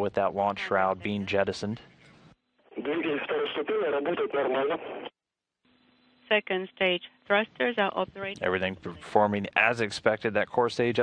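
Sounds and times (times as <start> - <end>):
voice over radio: 0.0 - 1.7, 2.7 - 5.1.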